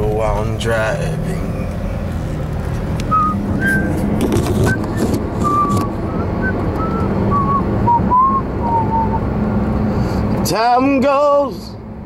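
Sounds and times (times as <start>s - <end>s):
car road and engine hum: 0.0s - 12.0s.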